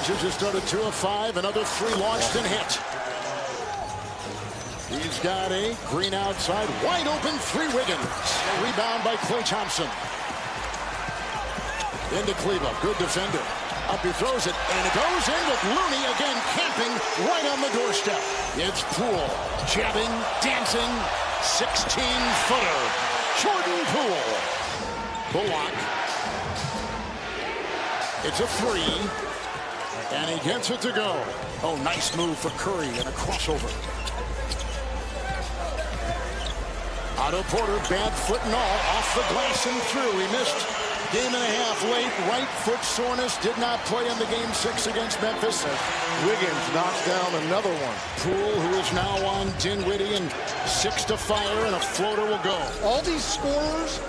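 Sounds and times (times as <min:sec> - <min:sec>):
arena crowd noise: 0:00.0 - 0:54.0.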